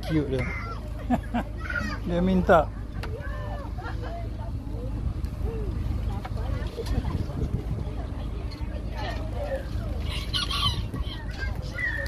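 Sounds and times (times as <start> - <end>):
faint voices: 0.0 - 12.0
steady low rumble: 0.0 - 12.0.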